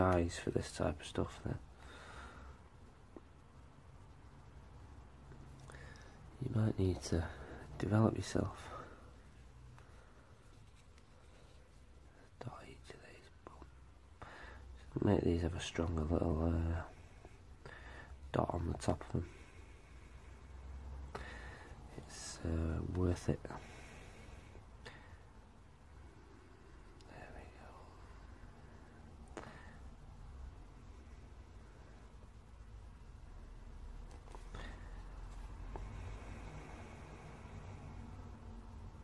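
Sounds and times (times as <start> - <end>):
faint whisper: 0.0 - 39.0
low steady hum: 0.0 - 39.0.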